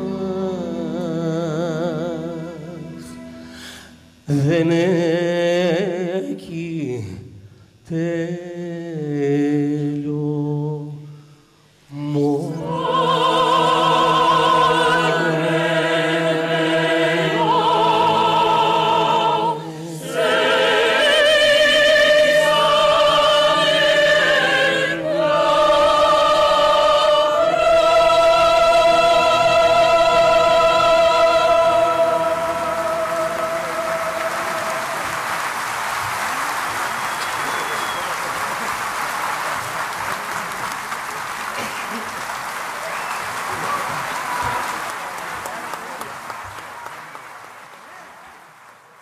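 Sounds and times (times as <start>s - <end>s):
band playing: 12.6s - 38.0s
audience applause: 31.8s - 49.0s.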